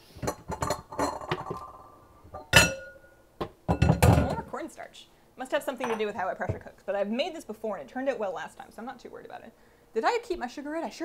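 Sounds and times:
bowls and dishes clattering: 0.2s - 3.1s, 3.7s - 4.5s, 5.8s - 6.1s.

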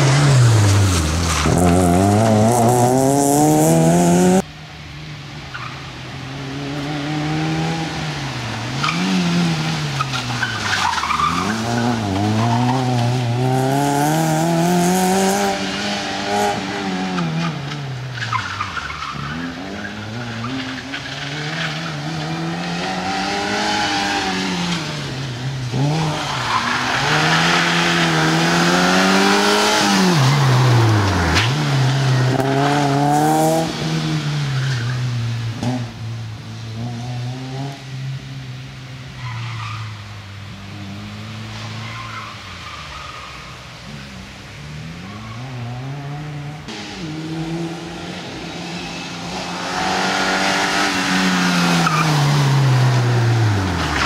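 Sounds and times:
rally car engine revving hard: 0.0s - 4.4s, 11.4s - 17.2s
tyres skidding: 0.0s - 54.0s.

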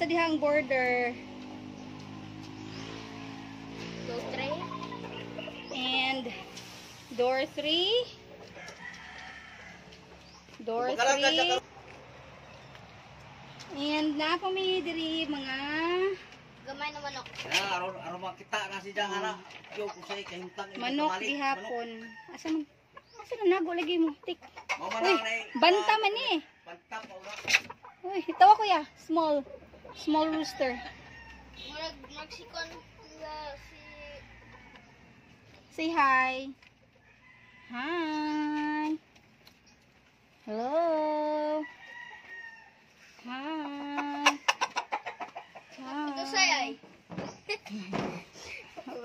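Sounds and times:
chickens clucking and calling: 1.2s - 13.7s, 17.4s - 40.4s, 41.4s - 49.0s
roosters crowing: 8.0s - 12.0s, 17.5s - 23.2s, 24.6s - 31.8s, 33.0s - 38.8s, 41.3s - 47.3s.

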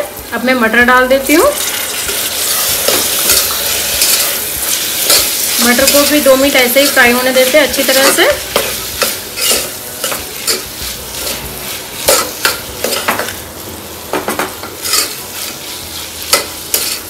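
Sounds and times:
vegetables sizzling in hot oil: 0.0s - 17.0s.

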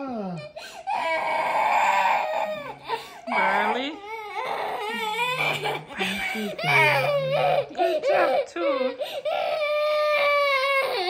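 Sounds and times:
toddler crying: 0.4s - 11.0s.

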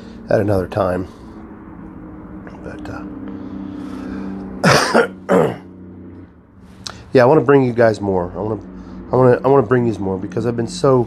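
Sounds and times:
man coughing: 4.6s - 5.7s.

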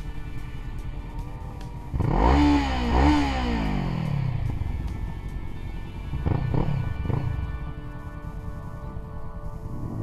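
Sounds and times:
motorcycle engine revving: 0.6s - 10.0s.

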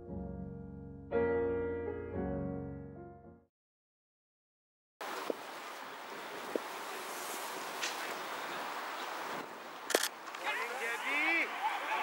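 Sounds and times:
players calling out: 10.4s - 12.0s.

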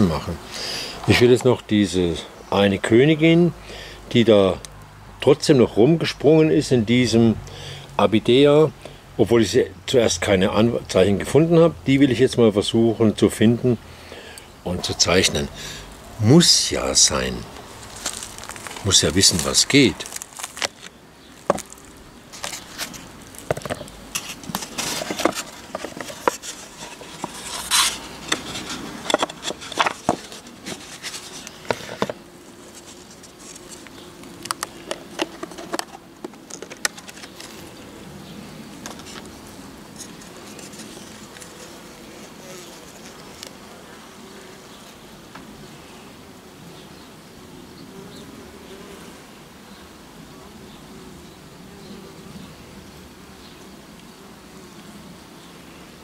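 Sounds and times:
bees buzzing: 12.6s - 56.0s
clicks and scrapes of hive frames: 17.2s - 38.0s, 38.7s - 45.5s.

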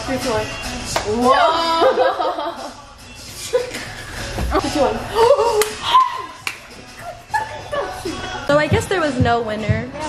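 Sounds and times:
young women yelping and laughing: 1.2s - 2.7s, 4.6s - 6.4s, 7.0s - 8.4s.

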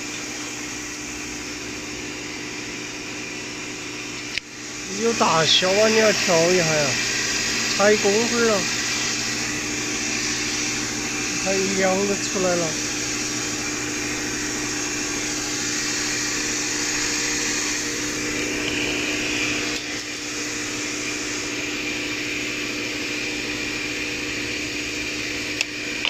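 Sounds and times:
paper folding machine running: 4.0s - 22.0s.

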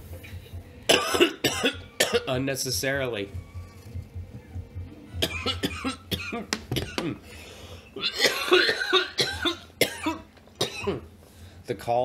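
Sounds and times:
man coughing: 0.9s - 2.3s, 5.2s - 7.2s, 8.0s - 11.1s.

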